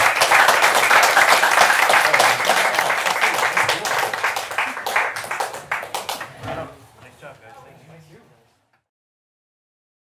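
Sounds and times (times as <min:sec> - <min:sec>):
audience applause: 0:00.0 - 0:06.4.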